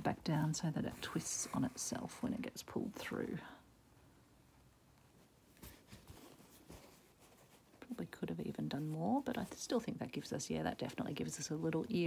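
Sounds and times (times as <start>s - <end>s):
fabric rustling: 4.8s - 12.0s.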